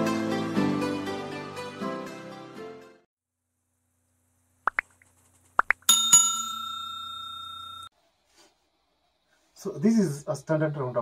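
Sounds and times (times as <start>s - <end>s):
bell-like chime: 5.9s - 7.9s.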